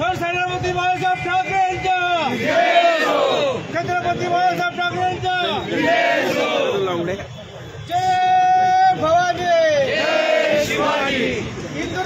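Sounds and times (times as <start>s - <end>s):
crowd of men chanting slogans: 2.3s - 3.7s, 5.5s - 6.9s, 9.6s - 11.6s.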